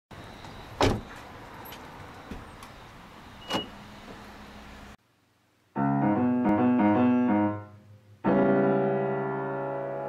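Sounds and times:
car door thump: 0.8 - 1.1.

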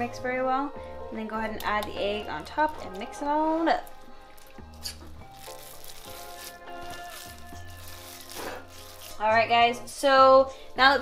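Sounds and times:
instrumental background music: 0.0 - 11.0.

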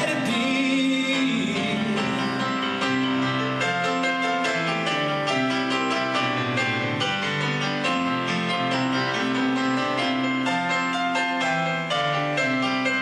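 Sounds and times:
piano chords over bass line: 0.0 - 13.0.

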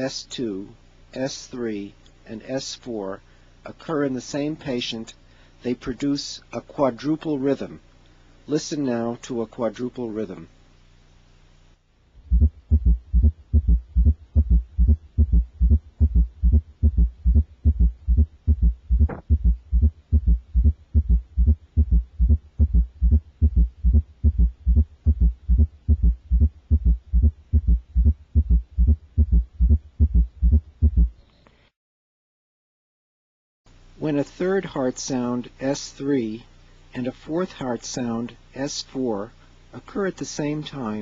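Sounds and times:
heartbeat through a stethoscope: 12.2 - 31.2.

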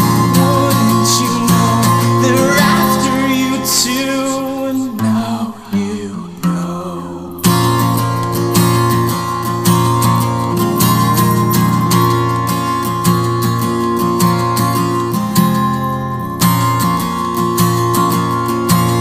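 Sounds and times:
acoustic guitar strumming: 0.0 - 19.0.

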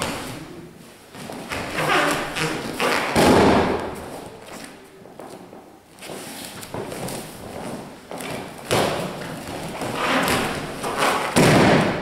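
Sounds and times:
body thudding onto foam mats: 8.1 - 12.0.

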